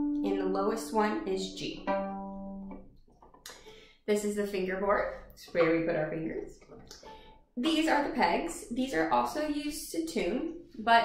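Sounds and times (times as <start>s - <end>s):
violin string plucked: 0.0s - 3.6s, 5.4s - 8.1s.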